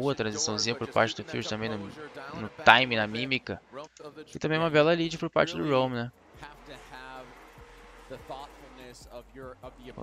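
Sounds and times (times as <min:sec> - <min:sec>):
nearby talk: 0:00.0 - 0:07.3.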